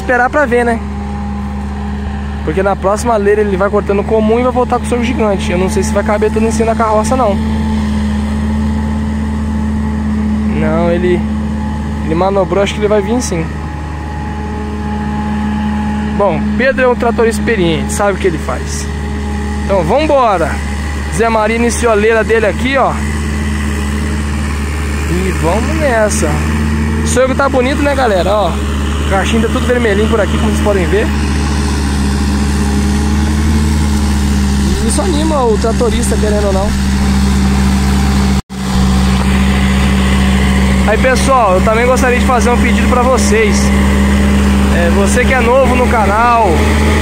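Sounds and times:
forage harvester chopping and blowing: 0.0s - 47.0s
tractor engine droning: 0.0s - 47.0s.

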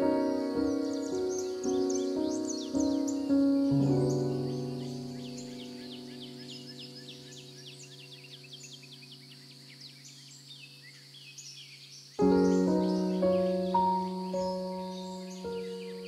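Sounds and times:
soft piano chords: 0.0s - 10.4s, 12.2s - 16.0s
birds chirping: 0.0s - 16.0s.

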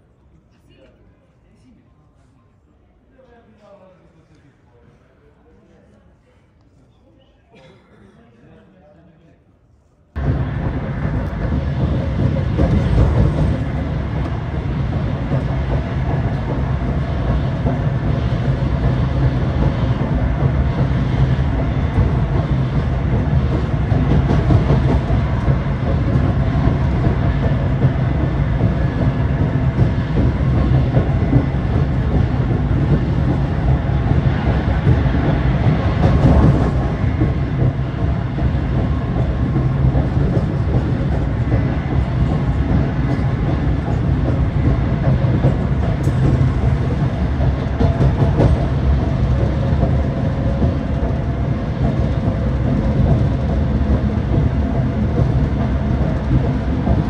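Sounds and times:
train wheels rumbling on rail: 10.2s - 57.0s.

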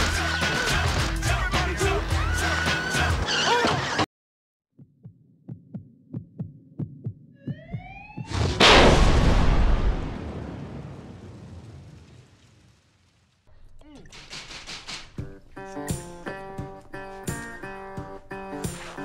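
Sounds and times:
explosion-like boom: 8.3s - 13.0s.

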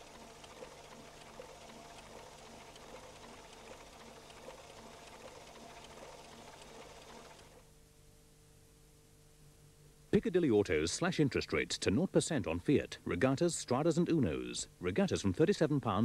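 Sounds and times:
tape hiss with crackle: 0.0s - 16.0s.

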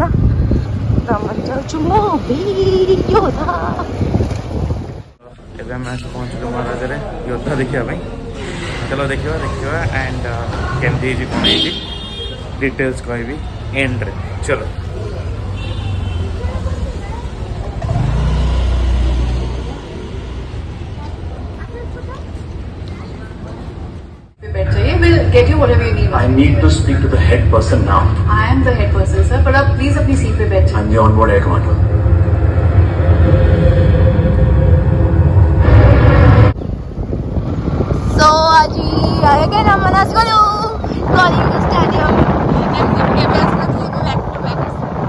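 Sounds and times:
people's voices: 0.0s - 4.4s, 5.2s - 35.2s, 38.0s - 45.0s
outdoor noise: 0.0s - 45.0s
vehicle traffic: 0.0s - 45.0s
low rumble: 24.3s - 45.0s.

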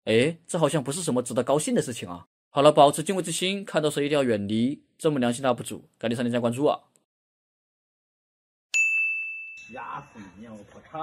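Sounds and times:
bell-like chime: 8.7s - 10.8s.

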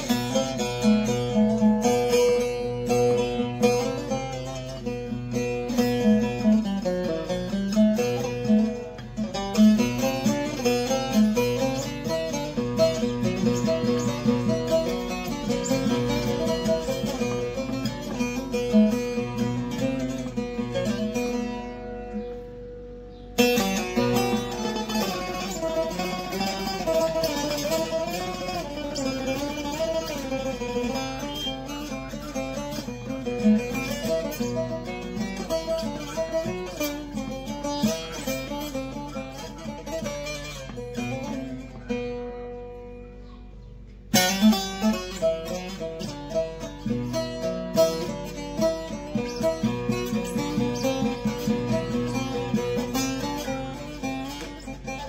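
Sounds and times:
plucked saz melody: 0.0s - 55.0s.

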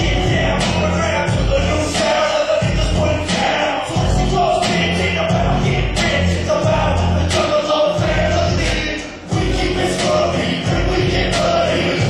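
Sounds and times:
loud live music with vocals: 0.0s - 12.0s.

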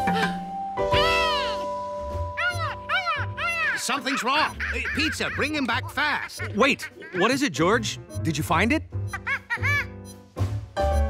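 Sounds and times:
background music with held notes: 0.0s - 11.0s
cartoon monkey calls: 2.4s - 7.4s.

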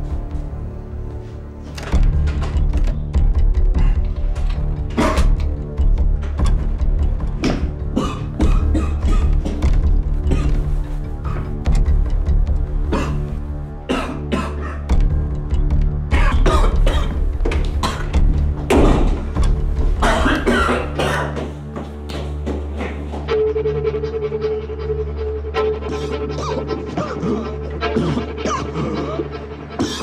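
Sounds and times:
dramatic music with low drone: 0.0s - 30.0s
man coughing hard: 7.6s - 9.6s, 10.2s - 10.6s, 12.9s - 13.3s, 13.9s - 14.9s, 16.1s - 17.2s, 17.8s - 18.2s, 20.0s - 21.6s, 26.3s - 30.0s.

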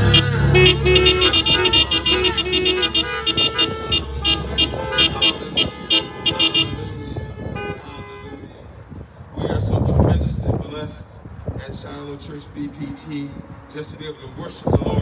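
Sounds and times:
keyboard and acoustic guitar song: 0.0s - 2.0s
car horns honking: 0.0s - 8.5s.

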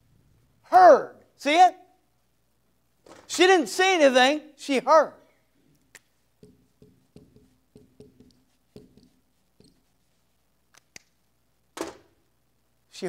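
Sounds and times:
marker squeaking on whiteboard: 6.4s - 10.4s.

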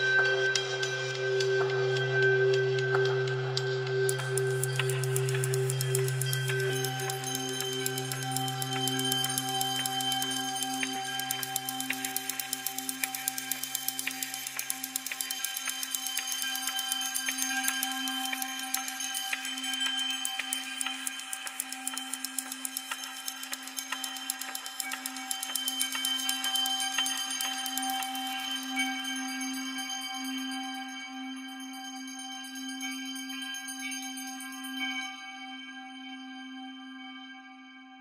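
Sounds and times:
bell drone: 0.0s - 37.1s
fast stream of clicks: 4.1s - 28.5s.

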